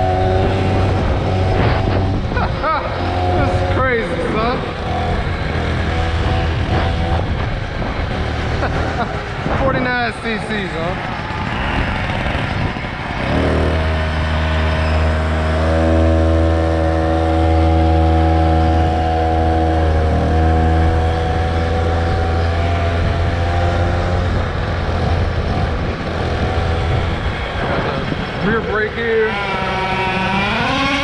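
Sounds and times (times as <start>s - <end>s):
riding noise rush: 0.0s - 31.0s
small engine running: 0.0s - 31.0s.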